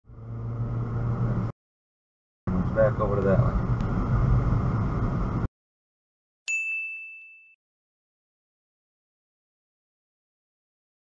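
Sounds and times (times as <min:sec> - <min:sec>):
car engine running: 0:00.1 - 0:01.5, 0:02.5 - 0:05.5.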